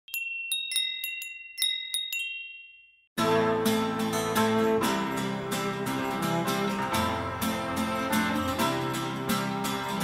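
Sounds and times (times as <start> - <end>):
guitar music: 3.2 - 10.0.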